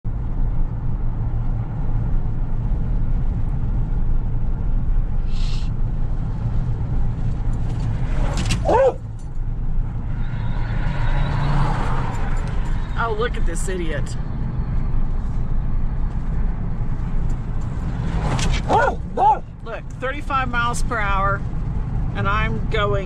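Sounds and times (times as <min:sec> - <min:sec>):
car road and engine rumble: 0:00.0 - 0:23.0
short hiss: 0:05.3 - 0:05.7.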